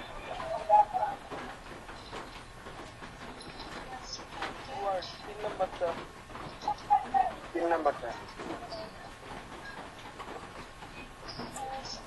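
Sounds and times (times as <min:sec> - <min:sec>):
muffled voices on a call line: 0:00.0 - 0:10.4, 0:11.4 - 0:12.0.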